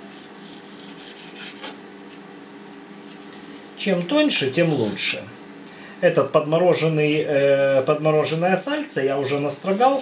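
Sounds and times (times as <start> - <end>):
knife sawing through meat: 0.0 - 1.8, 2.9 - 3.8, 9.4 - 10.0
faint steady hum: 0.0 - 10.0.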